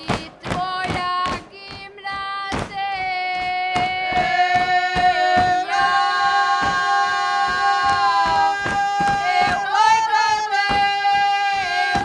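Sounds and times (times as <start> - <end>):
feet stamping on stage: 0.0 - 12.0
folk singers holding a note: 0.0 - 12.0.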